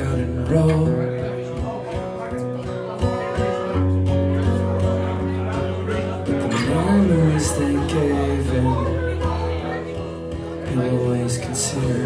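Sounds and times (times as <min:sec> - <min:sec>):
man singing: 0:00.0 - 0:02.7, 0:04.5 - 0:12.0
acoustic guitar strumming chords: 0:00.0 - 0:12.0.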